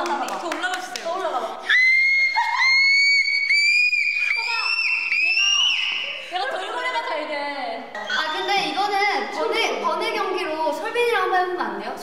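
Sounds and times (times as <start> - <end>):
chatter: 4.2 - 12.0.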